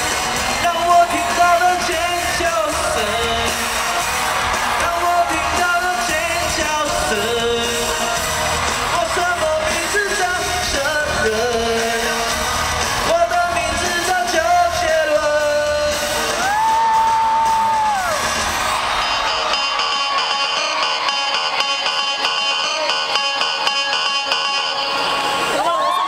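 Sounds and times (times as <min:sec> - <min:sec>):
live pop band with singing: 0:00.0 - 0:26.0.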